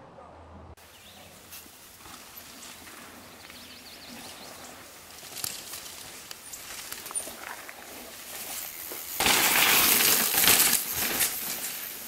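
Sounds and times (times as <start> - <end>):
outdoor hiss: 0.8 - 3.8
bike tyres on dirt: 0.8 - 12.0.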